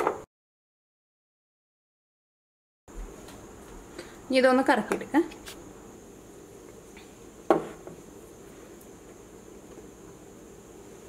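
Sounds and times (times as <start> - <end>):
faint room hum: 2.9 - 11.0.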